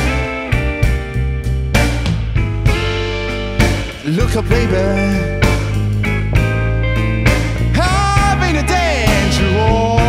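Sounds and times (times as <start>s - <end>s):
drum kit: 0.0s - 10.0s
electric bass: 0.0s - 10.0s
electric guitar: 0.0s - 10.0s.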